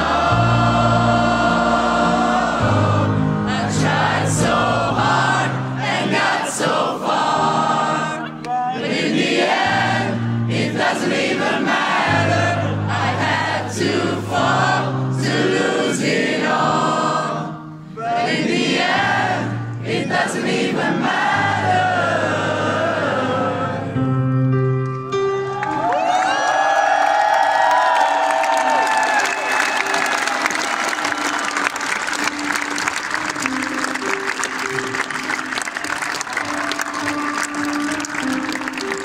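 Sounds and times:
crowd singing in unison: 0.0s - 24.2s.

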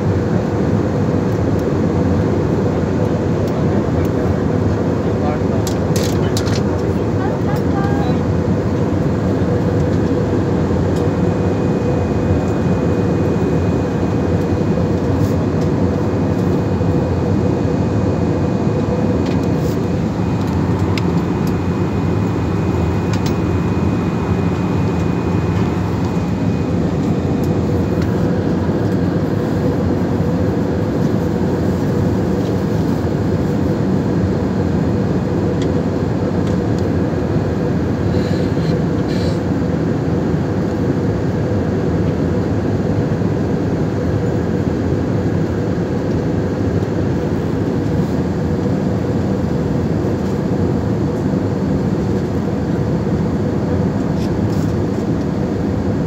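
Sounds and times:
jet airliner cabin drone: 0.0s - 56.0s.

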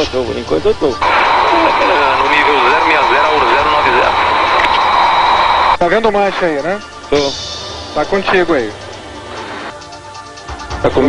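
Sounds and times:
jet cockpit noise over intercom: 1.0s - 5.8s.

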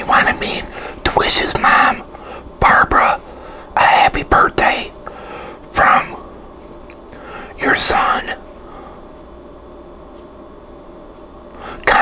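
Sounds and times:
man whispering: 0.0s - 5.0s, 5.7s - 6.3s, 7.5s - 8.5s, 11.8s - 12.0s.

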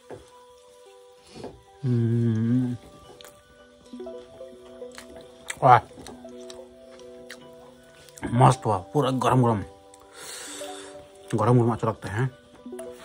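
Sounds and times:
soft background music: 0.0s - 13.0s
man humming mmm: 1.8s - 3.1s
wet mouth chewing clicks: 4.8s - 8.2s.

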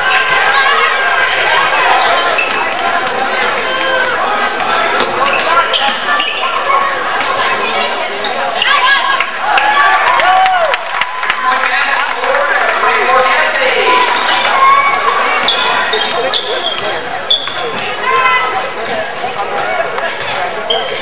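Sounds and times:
chatter and calls echoing: 0.0s - 21.0s.

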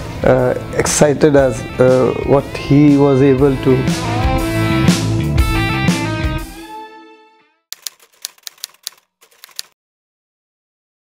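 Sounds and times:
typewriter key clicks: 7.8s - 9.8s.

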